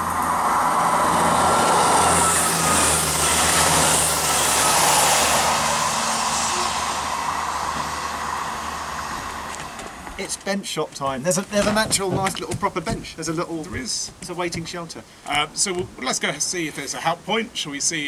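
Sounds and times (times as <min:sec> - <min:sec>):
train wheels on rails: 0:00.0 - 0:10.5
diesel engines humming: 0:00.0 - 0:10.6.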